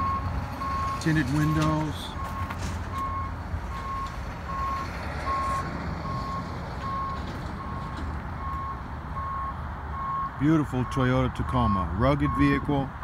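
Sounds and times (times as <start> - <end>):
vehicle backup alarm beeping: 0.0 - 13.0.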